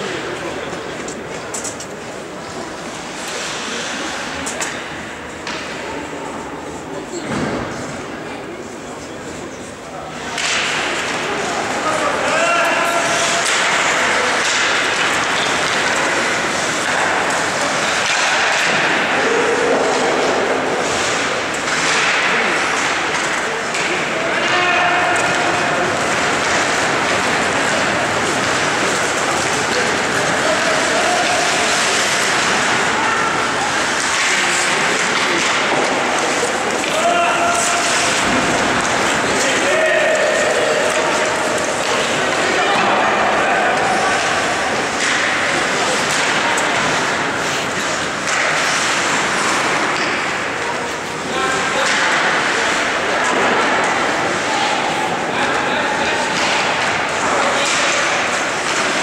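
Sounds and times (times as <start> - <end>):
skates and sticks on ice: 0.1 - 59.0
players shouting: 11.4 - 21.0, 23.8 - 47.4.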